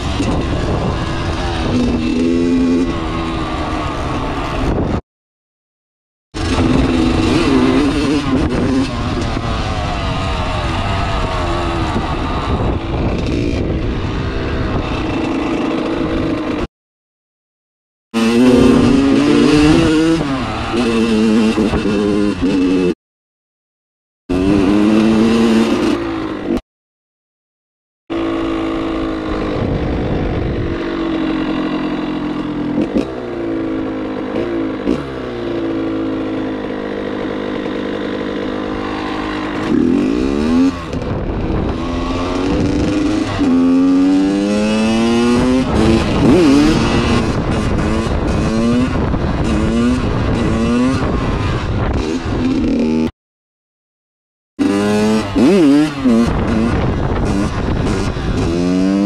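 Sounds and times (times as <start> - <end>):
dirt bike engine revving: 0.0 - 5.0, 6.4 - 16.7, 18.2 - 23.0, 24.3 - 26.6, 28.1 - 53.1, 54.6 - 59.0.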